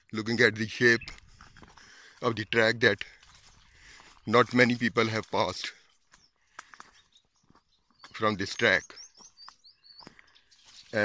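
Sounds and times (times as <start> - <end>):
footsteps on stones and leaves: 0.8 - 11.0
faint bird chirps: 5.8 - 11.0.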